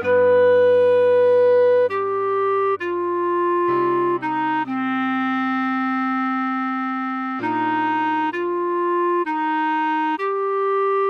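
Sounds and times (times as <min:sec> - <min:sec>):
clarinet holding low note: 0:00.0 - 0:11.0.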